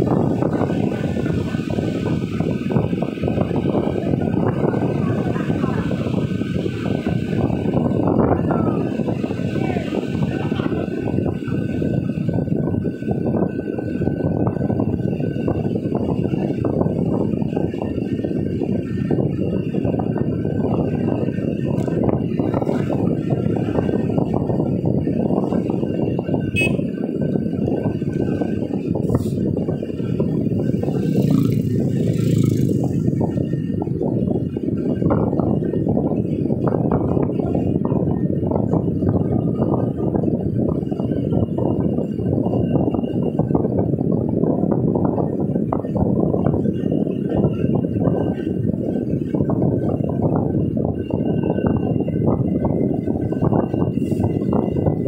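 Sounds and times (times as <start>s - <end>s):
car road and wind noise: 0.0s - 55.0s.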